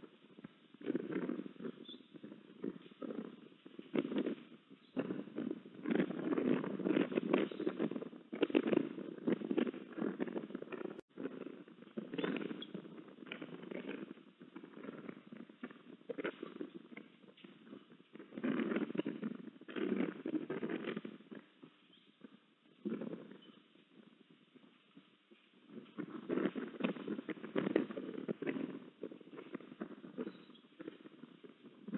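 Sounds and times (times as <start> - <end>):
soft clicks and pecks: 0.0 - 31.9.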